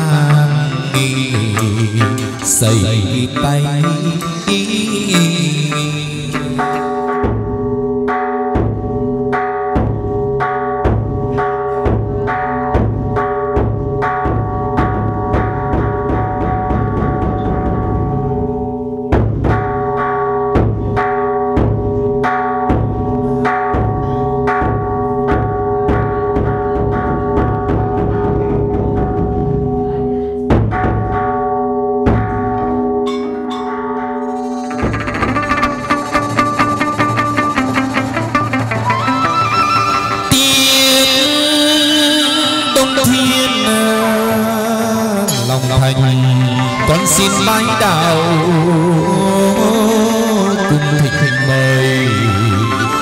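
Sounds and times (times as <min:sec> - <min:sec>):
drum and cymbal strikes: 0:00.0 - 0:31.4, 0:32.1 - 0:41.9
plucked lute notes: 0:00.0 - 0:53.0
high ringing taps: 0:30.5 - 0:38.3
held keyboard chords: 0:32.2 - 0:53.0.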